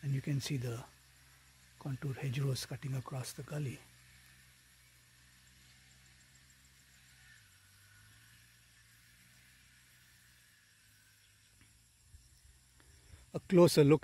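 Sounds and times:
faint steady hiss: 0.0s - 14.0s.

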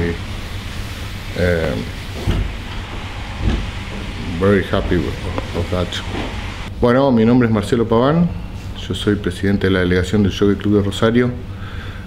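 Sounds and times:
even hiss: 0.0s - 6.7s
low background rumble: 0.0s - 6.9s.

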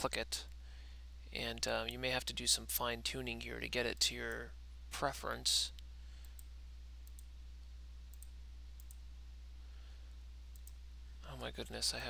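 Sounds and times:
low electrical hum: 0.0s - 12.0s
computer mouse clicks: 5.8s - 7.3s, 8.1s - 9.0s, 10.5s - 10.8s.

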